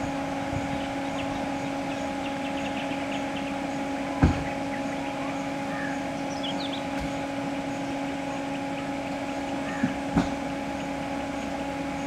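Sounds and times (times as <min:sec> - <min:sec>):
vehicle engine idling: 0:00.0 - 0:12.0
high bird chirps: 0:00.7 - 0:07.0.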